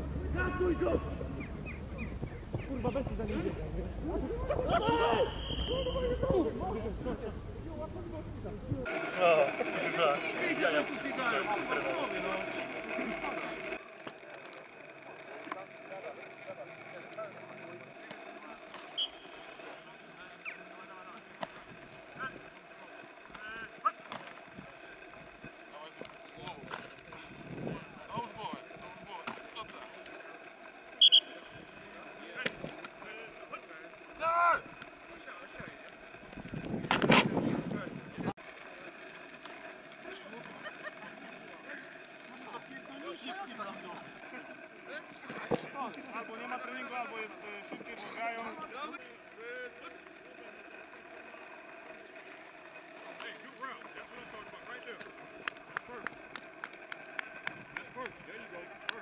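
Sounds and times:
players shouting: 0.0s - 2.1s, 2.7s - 7.2s, 8.8s - 13.8s, 15.7s - 36.2s
faint voices calling: 0.0s - 36.5s
whistle blasts: 5.0s - 6.2s, 18.9s - 19.6s, 31.0s - 31.6s
running footsteps: 49.0s - 59.0s.

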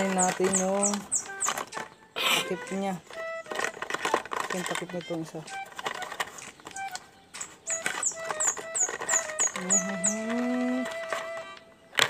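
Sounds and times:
syringe kit clicks and knocks: 0.0s - 12.0s.

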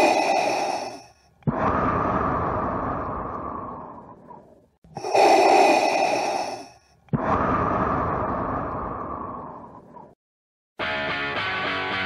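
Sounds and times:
mechanical respirator breathing: 0.0s - 10.2s.

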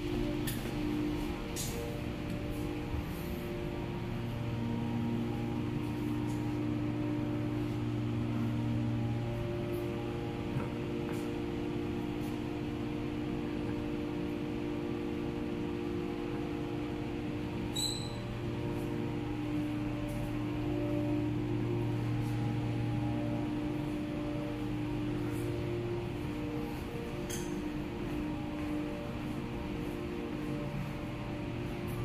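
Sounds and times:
low tones droning: 0.0s - 32.0s.

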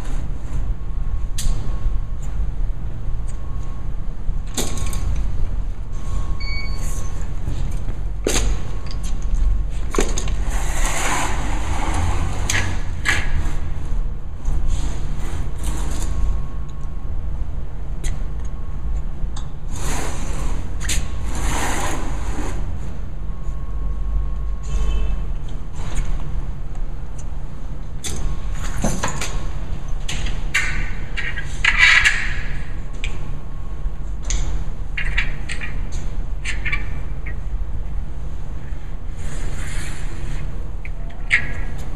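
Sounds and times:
low rumble: 0.0s - 28.6s
cart scraping and knocking on concrete: 10.0s - 12.8s.

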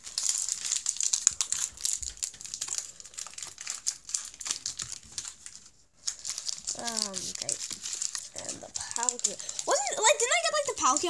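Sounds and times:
foil wrappers crinkling: 0.0s - 11.0s.

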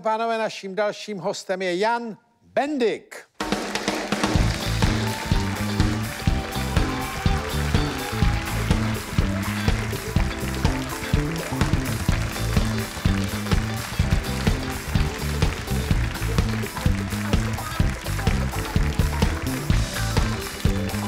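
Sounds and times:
live band playing upbeat tune: 3.4s - 21.0s.

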